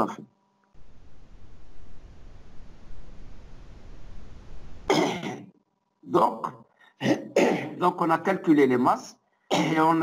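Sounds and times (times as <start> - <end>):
low hiss and rumble: 0.6 - 5.1
person clearing throat: 4.9 - 5.6, 7.0 - 7.8, 9.5 - 10.0.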